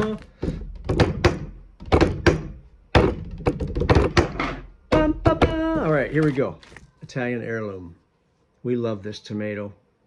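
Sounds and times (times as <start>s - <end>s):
dull thunks and knocks: 0.4s - 4.4s.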